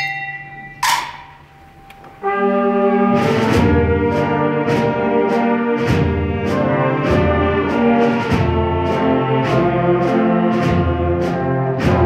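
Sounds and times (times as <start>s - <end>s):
bell-like metallic percussion: 0.0s - 1.7s.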